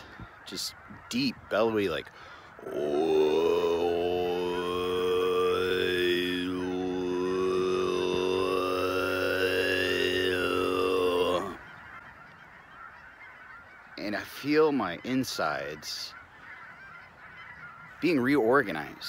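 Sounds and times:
man chanting low note: 2.6 - 11.6.

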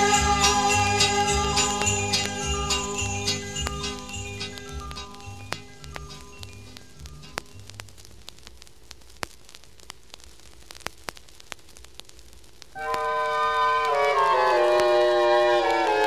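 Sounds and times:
orchestra sustained chords: 0.0 - 5.5, 12.8 - 16.0
vinyl record clicks and pops: 1.6 - 16.0.

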